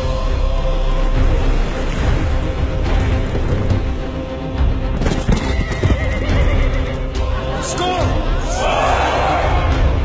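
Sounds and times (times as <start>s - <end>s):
hooves clopping: 5.0s - 7.2s.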